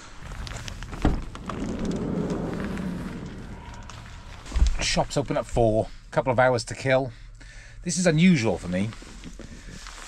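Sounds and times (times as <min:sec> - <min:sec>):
car passing on wet road: 0:00.4 - 0:05.0.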